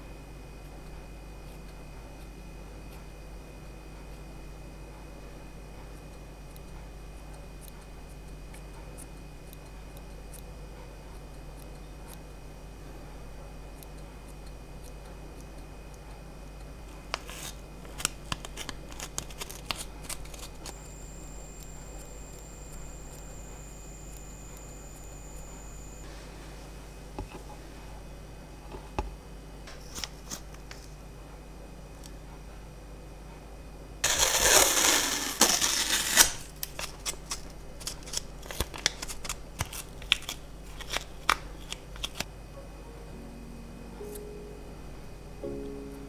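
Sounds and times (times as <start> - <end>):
faint high whine: 0.0 - 28.6, 34.0 - 36.6, 42.2 - 46.0
paper tissue crinkling: 34.0 - 42.3.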